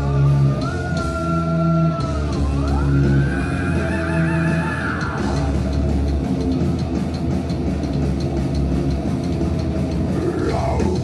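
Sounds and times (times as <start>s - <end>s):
drums fast beat: 0.0s - 11.0s
electric guitar: 0.0s - 11.0s
heavy bass: 0.0s - 11.0s.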